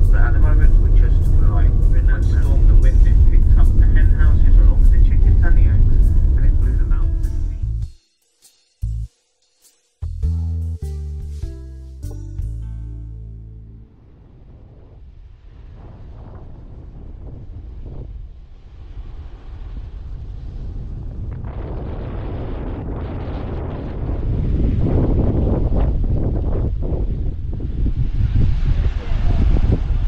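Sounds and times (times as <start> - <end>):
wind buffeting microphone: 0.0 - 7.8, 13.9 - 30.0.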